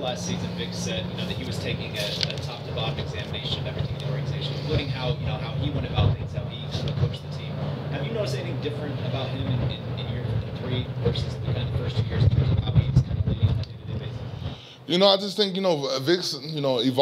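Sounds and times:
man asking a question: 0.0 - 17.0
steady low hum: 0.0 - 17.0.

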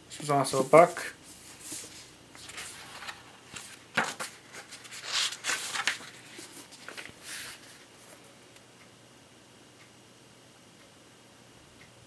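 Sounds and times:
book pages rustling: 1.4 - 8.3.

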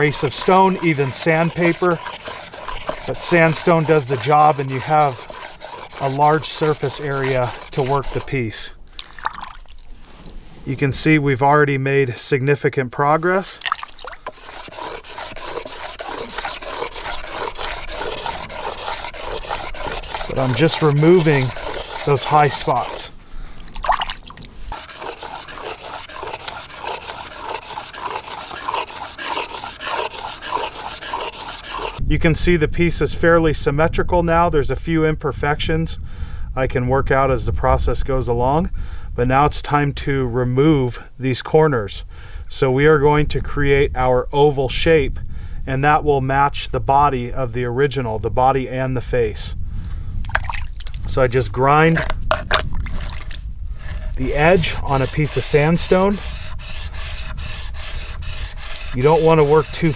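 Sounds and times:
stone scraping on sandstone: 0.0 - 8.6, 14.2 - 23.2, 24.6 - 32.0, 53.8 - 59.9.

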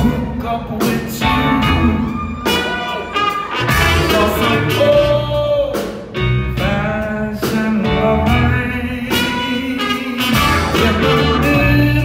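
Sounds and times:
lead vocal singing: 0.0 - 12.0
live rock band playing: 0.0 - 12.0.

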